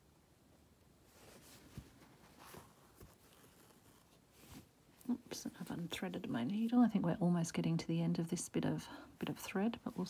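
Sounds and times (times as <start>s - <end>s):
hands rustling fabric: 0.9s - 6.9s.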